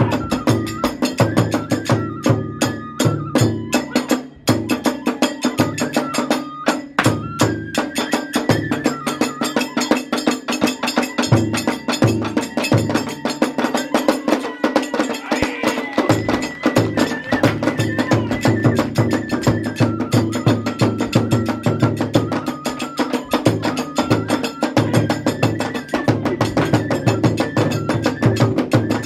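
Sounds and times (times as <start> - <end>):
bamboo flute melody: 0.0 - 29.0
hand cymbals clashing: 4.7 - 29.0
barrel drum beating fast: 11.3 - 22.6, 23.2 - 29.0.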